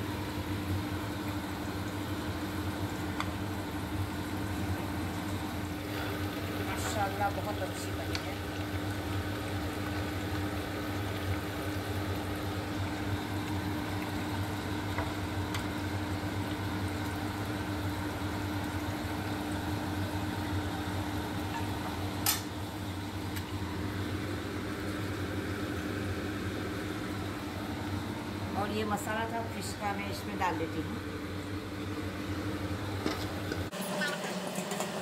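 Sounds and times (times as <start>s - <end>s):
oil sizzling in a frying pan: 0.0s - 28.5s.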